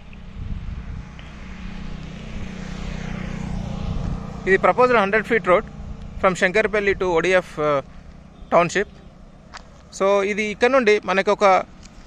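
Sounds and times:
low uneven rumble: 0:00.0 - 0:10.7
motor vehicle engine drone: 0:00.0 - 0:12.0.

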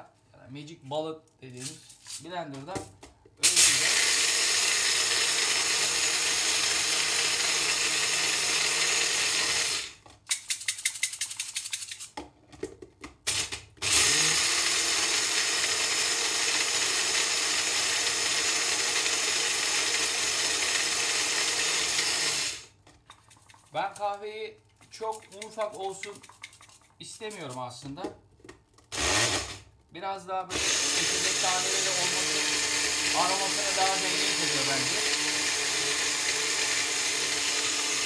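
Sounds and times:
blender grinding coffee beans: 0:03.4 - 0:10.0, 0:13.3 - 0:22.7, 0:28.9 - 0:29.6, 0:30.5 - 0:38.0
blender short pulses and rattling: 0:03.4 - 0:10.0, 0:13.3 - 0:22.7, 0:28.9 - 0:29.6, 0:30.5 - 0:38.0.

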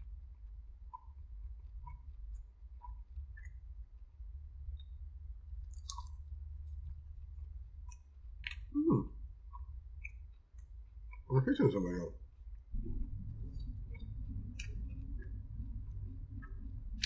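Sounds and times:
low steady hum: 0:00.0 - 0:17.0
mouth clicks and smacks chewing: 0:05.6 - 0:06.2, 0:07.8 - 0:08.8, 0:09.5 - 0:11.3
short low vocal hum: 0:08.8 - 0:09.2, 0:12.8 - 0:17.0.

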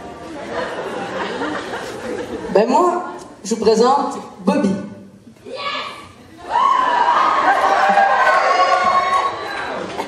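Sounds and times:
audience murmuring and chattering: 0:00.0 - 0:10.0.

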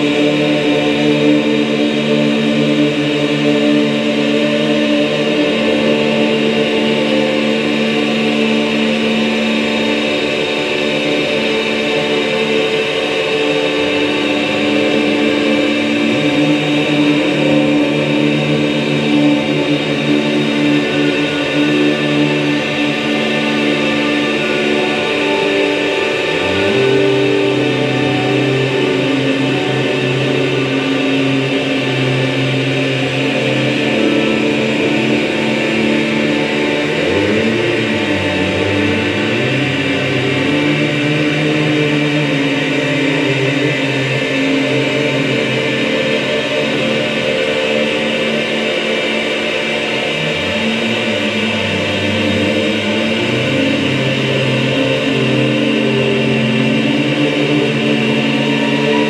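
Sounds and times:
drone music: 0:00.0 - 0:59.0.

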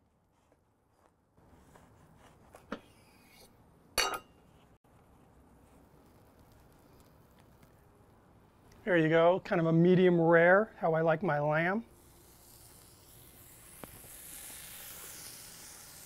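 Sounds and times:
sharp metallic clink: 0:04.0 - 0:04.4.

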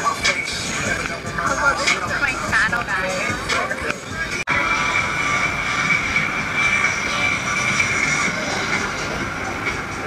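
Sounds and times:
mechanical drone with high whine: 0:00.0 - 0:10.0.

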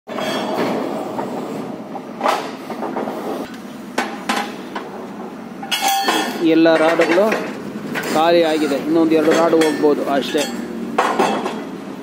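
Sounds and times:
metallic knocks of steel pipes: 0:05.6 - 0:11.7.

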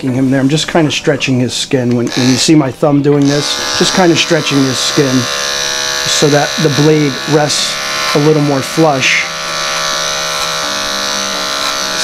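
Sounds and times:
electric clippers buzzing: 0:02.1 - 0:02.6, 0:03.2 - 0:12.0.

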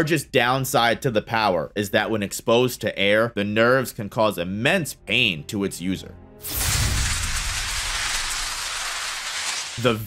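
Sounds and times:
rushing hiss: 0:06.5 - 0:09.8.

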